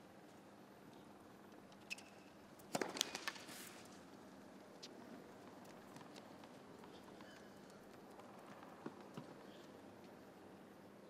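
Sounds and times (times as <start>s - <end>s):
shoe squeak: 1.9s - 2.3s, 6.9s - 7.7s.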